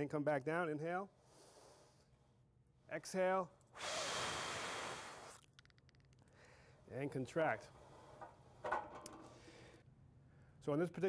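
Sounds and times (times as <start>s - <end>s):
man exhaling forcefully: 3.8s - 5.4s.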